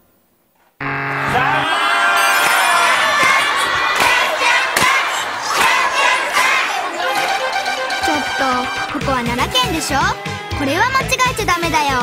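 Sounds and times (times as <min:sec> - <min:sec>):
children shouting: 0:01.2 - 0:11.0.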